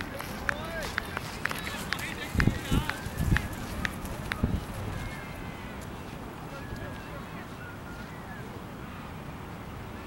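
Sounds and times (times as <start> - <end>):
distant indistinct voices: 0.0 - 10.0.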